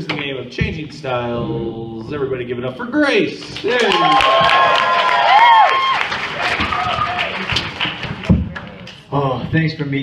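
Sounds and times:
audience clapping and cheering: 3.4s - 9.1s.

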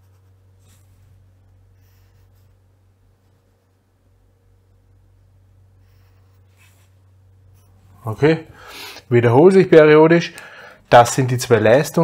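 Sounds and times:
pen strokes on paper: 0.0s - 3.8s, 5.8s - 7.8s
low steady hum: 0.0s - 12.0s.

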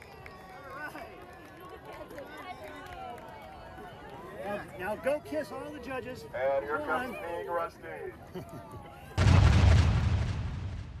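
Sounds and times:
deep boom with rumbling tail: 9.2s - 11.0s.

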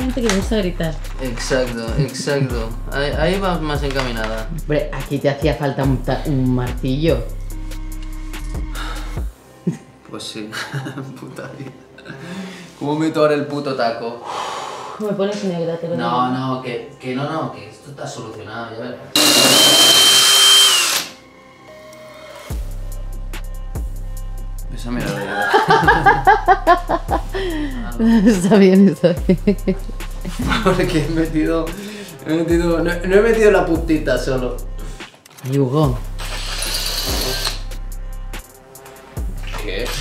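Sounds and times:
background music with beat: 0.0s - 10.0s, 22.5s - 40.0s
cordless drill whining: 19.2s - 21.2s, 36.2s - 37.7s.

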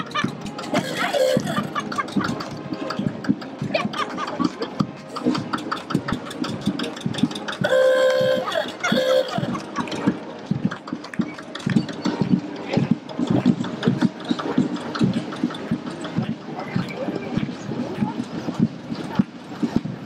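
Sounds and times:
tractor engine chugging: 0.0s - 19.8s
vehicle horn blasts: 7.6s - 9.4s.

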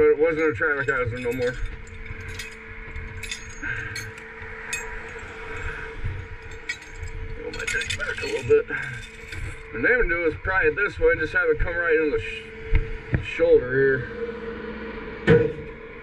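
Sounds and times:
steady low hum: 0.0s - 16.0s
metal chain clinking and jangling: 0.2s - 10.2s.

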